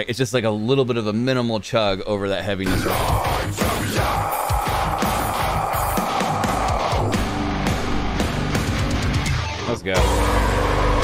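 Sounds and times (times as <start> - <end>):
heavy metal song: 2.6 - 11.0.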